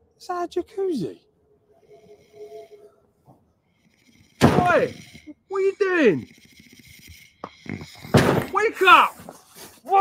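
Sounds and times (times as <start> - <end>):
person snoring faintly: 1.8 - 3.0, 3.7 - 9.2.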